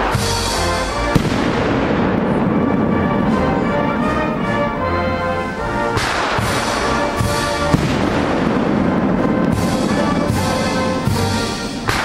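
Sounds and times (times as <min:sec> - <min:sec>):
ceremonial band sustained chords: 0:00.0 - 0:12.0.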